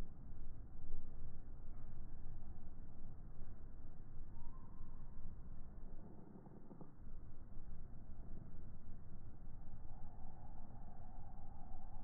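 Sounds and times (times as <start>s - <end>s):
low rumbling outdoor noise: 0.0s - 12.0s.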